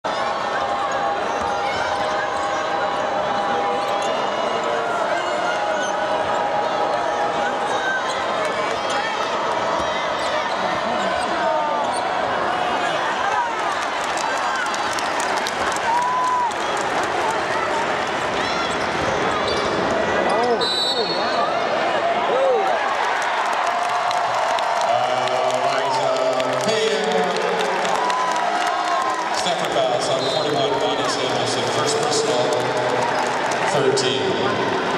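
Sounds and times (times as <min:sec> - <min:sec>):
arena crowd chatter: 0:00.0 - 0:34.9.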